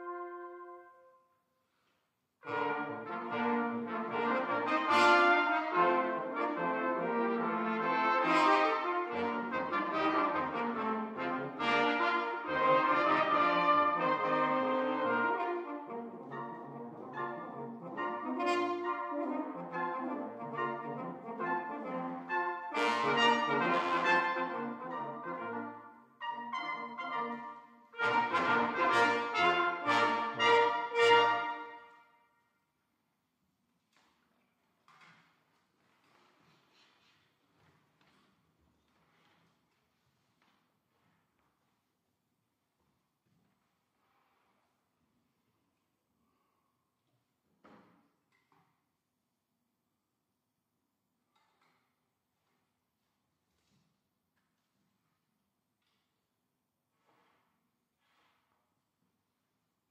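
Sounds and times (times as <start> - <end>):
brass ensemble playing: 0.0 - 1.2, 2.4 - 32.2.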